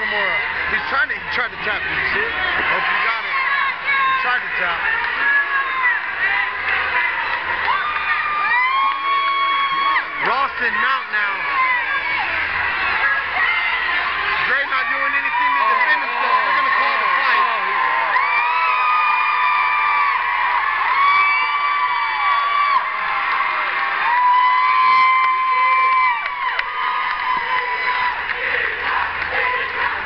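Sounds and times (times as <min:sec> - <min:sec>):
crowd cheering and shouting: 0:00.0 - 0:30.0
high-pitched screams: 0:05.2 - 0:30.0.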